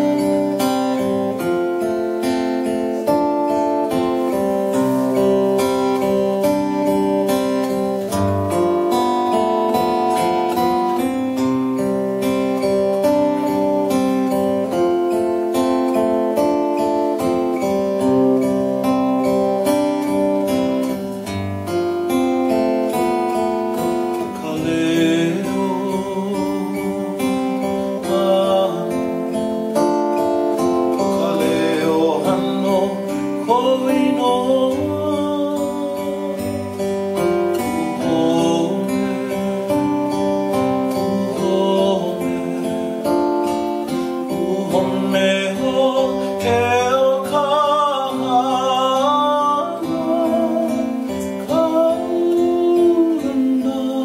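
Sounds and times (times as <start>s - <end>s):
man singing: 0.0s - 21.3s, 22.5s - 54.0s
strummed acoustic guitar: 0.0s - 54.0s.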